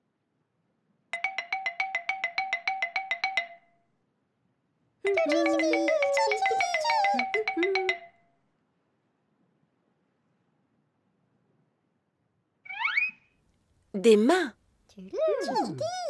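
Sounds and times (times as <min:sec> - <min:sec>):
squeaky puppet voices warbling: 0:05.0 - 0:08.1, 0:15.1 - 0:16.0
rapid electronic ringing trill: 0:05.1 - 0:08.1.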